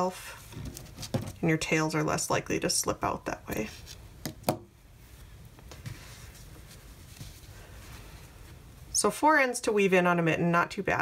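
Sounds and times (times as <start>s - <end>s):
hands rustling yarn: 3.6s - 9.1s.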